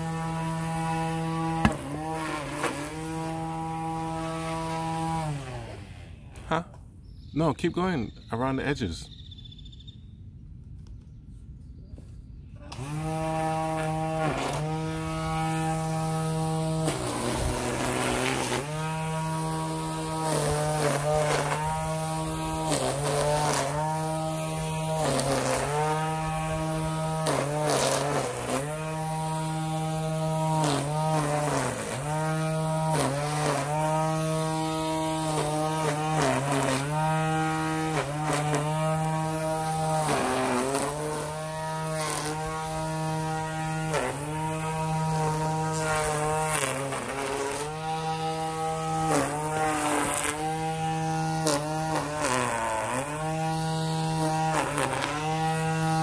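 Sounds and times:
string trimmer motor whine: 0.0 - 6.5, 12.6 - 56.0.

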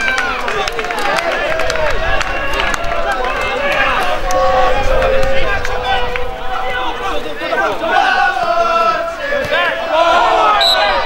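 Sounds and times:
people shouting and calling out: 0.0 - 11.0.

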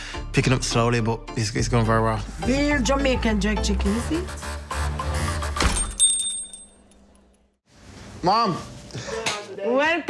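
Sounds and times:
shop door bell ringing: 5.8 - 6.9.

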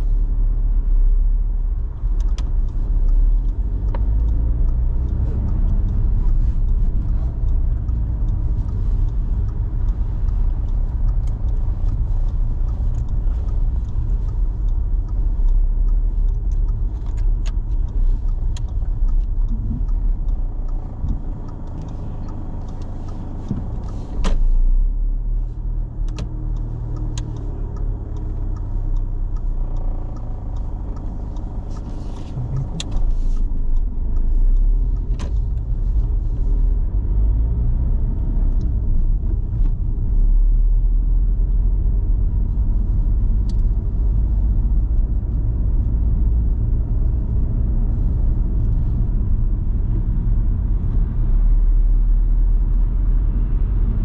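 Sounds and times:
engine and tyre rumble: 0.0 - 54.0
light clicks: 25.5 - 40.1.

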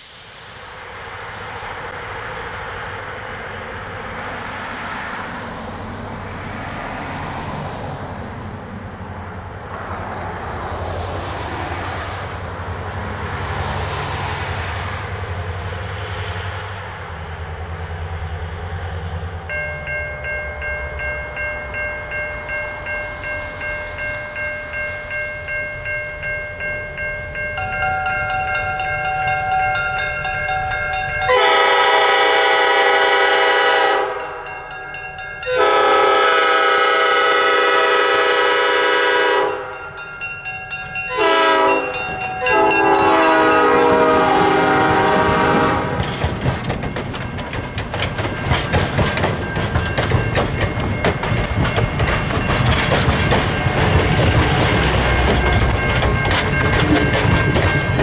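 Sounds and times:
locomotive air horn blasts: 31.2 - 34.3, 35.5 - 39.8, 41.1 - 46.0
train wheel clatter: 39.5 - 58.0.

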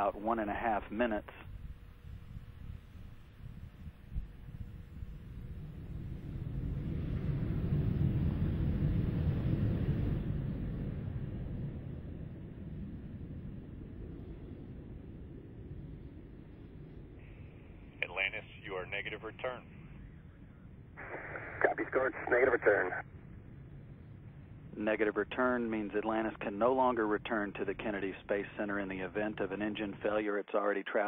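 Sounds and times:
low wind-like rumble: 0.0 - 31.0.

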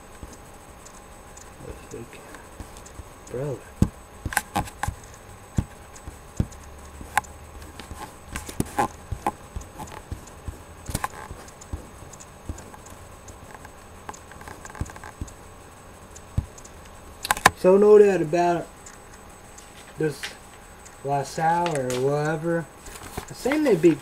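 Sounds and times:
light clicks and knocks: 0.0 - 15.6.

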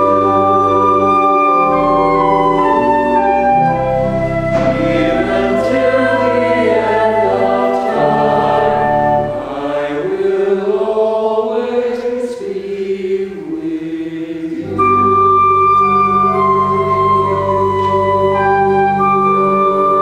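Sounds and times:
organ: 0.0 - 11.9, 12.5 - 20.0
choir singing: 0.0 - 20.0.

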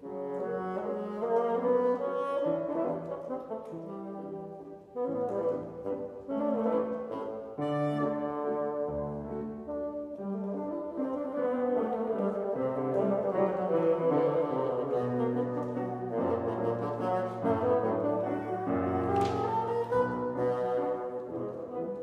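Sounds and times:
bassoon melody: 0.0 - 22.0
piano accompaniment: 0.0 - 22.0.

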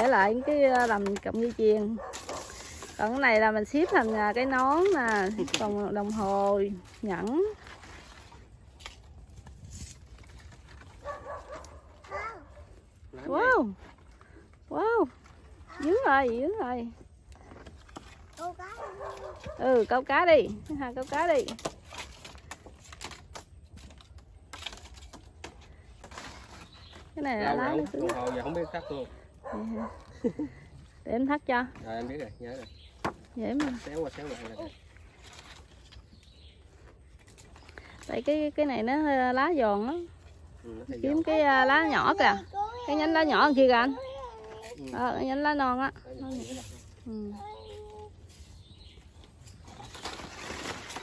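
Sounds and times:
palm leaves crackling and rustling: 0.0 - 51.0.

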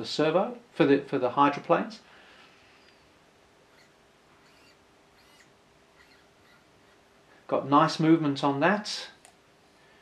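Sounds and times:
faint steady hum: 0.0 - 10.0
servo whirs and squeaks: 3.7 - 6.7.

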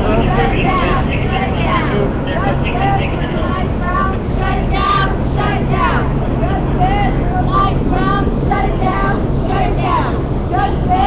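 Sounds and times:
crowd chanting: 0.0 - 11.0
low steady hum: 0.0 - 11.0.

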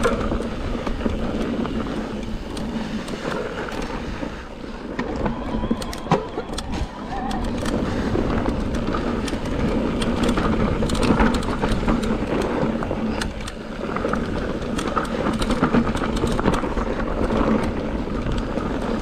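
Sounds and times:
bike clicking and rattling: 0.0 - 19.0
tyres rumbling on dirt trail: 0.0 - 19.0.

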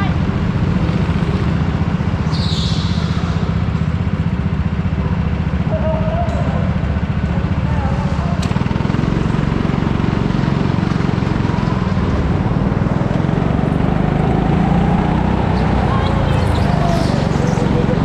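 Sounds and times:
go-kart engine rumbling: 0.0 - 18.0.

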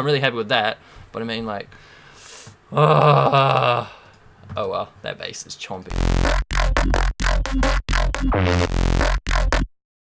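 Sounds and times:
heavy synth bass stabs: 5.9 - 9.7
rising synth sweep: 5.9 - 9.7
drum and bass music: 5.9 - 9.8.

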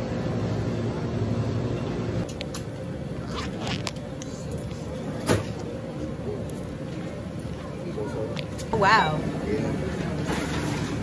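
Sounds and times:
checkout area hum: 0.0 - 11.0.

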